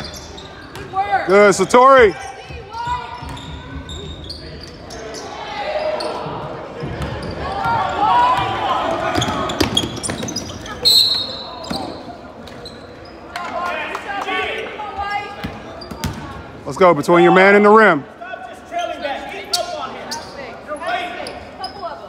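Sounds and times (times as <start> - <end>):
voices echoing in a gym: 0.0 - 22.0
referee's whistle: 10.8 - 12.0.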